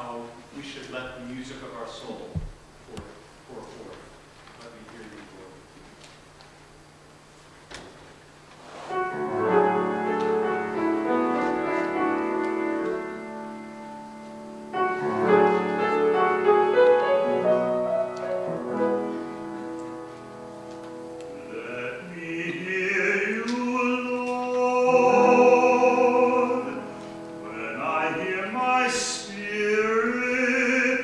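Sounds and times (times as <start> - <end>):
piano chords: 8.9 - 31.0
person singing: 15.0 - 19.3, 21.4 - 31.0.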